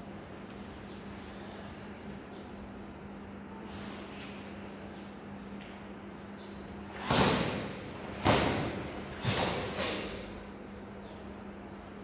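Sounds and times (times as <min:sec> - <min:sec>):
bodies landing on foam mats: 0:06.9 - 0:10.1.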